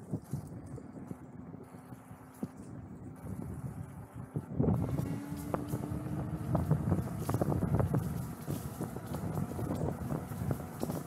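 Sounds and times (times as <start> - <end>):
tyres rumbling on dirt trail: 0.0 - 11.0
wind buffeting microphone: 0.0 - 11.0.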